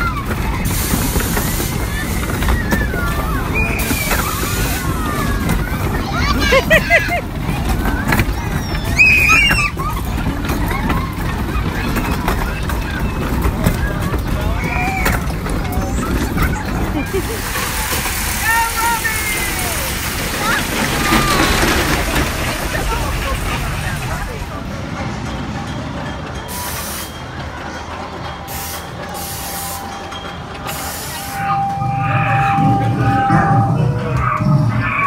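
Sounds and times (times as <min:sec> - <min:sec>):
children squealing: 0:00.0 - 0:24.5, 0:30.7 - 0:35.0
roller coaster rumbling on track: 0:00.0 - 0:35.0
steady high tone: 0:29.3 - 0:34.5.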